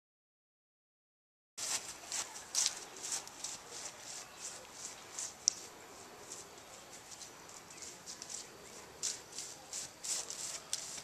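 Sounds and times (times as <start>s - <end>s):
footsteps on grass: 1.6s - 11.0s.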